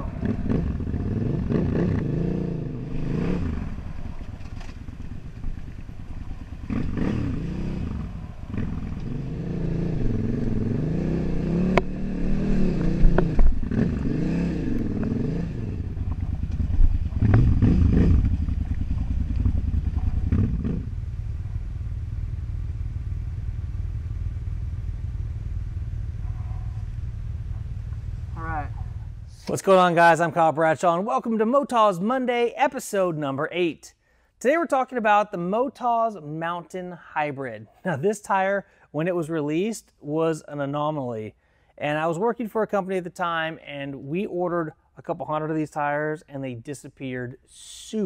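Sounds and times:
motorcycle engine revving: 0.0s - 29.4s.

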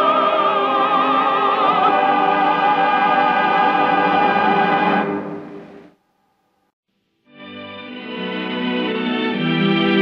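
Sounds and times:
operatic tenor singing: 0.0s - 5.1s
orchestral accompaniment: 7.3s - 10.0s.

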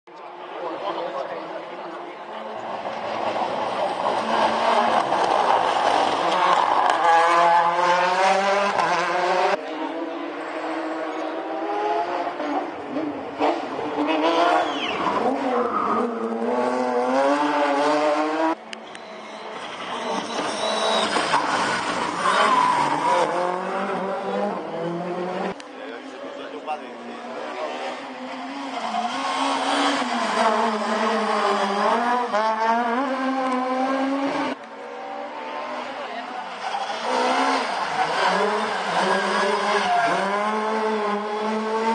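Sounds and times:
rally car engine at full throttle: 0.1s - 41.9s.

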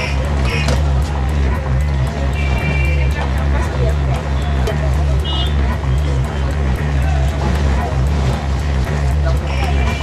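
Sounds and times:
high horn toots: 0.0s - 3.4s, 4.2s - 7.0s, 8.6s - 10.0s
crowd voices: 0.0s - 10.0s
heavy low rumble: 0.0s - 10.0s
music: 0.0s - 10.0s.

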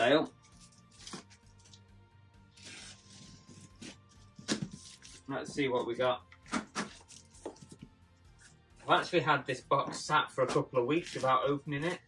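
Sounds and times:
packing tape ripping off cardboard: 0.5s - 1.8s, 2.5s - 5.2s, 6.4s - 7.6s.

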